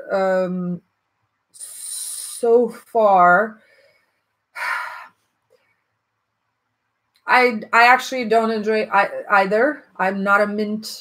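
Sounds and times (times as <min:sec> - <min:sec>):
short breath: 0:03.6 - 0:05.9.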